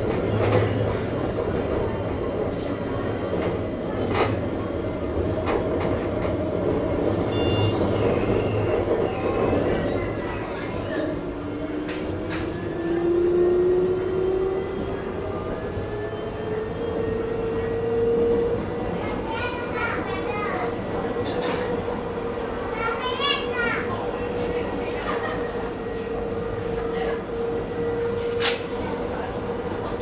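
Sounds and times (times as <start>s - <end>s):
tram motors whining: 0.0s - 30.0s
wheels rumbling on rail: 0.0s - 30.0s.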